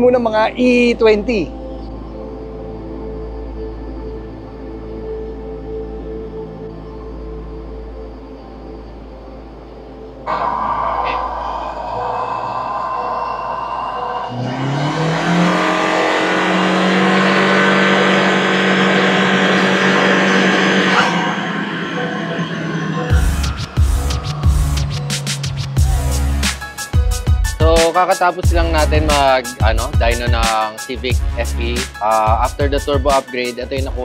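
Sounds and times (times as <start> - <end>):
background music: 0.0 - 34.0
turbocharged car engine revving: 10.3 - 27.6.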